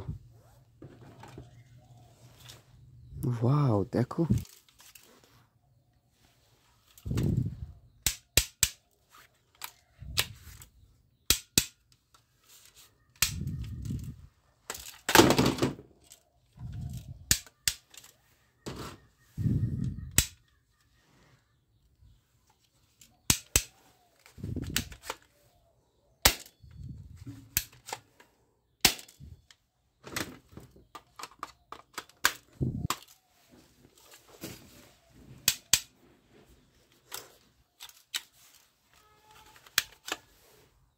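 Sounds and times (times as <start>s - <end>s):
plastic toy gun clicks: 8.0s - 10.6s, 11.2s - 12.2s, 13.2s - 14.1s, 16.9s - 18.2s, 20.1s - 20.5s, 23.0s - 23.8s, 24.6s - 25.3s, 26.2s - 26.7s, 27.5s - 28.2s, 28.8s - 29.6s, 30.9s - 33.2s, 35.4s - 35.9s, 39.3s - 40.3s.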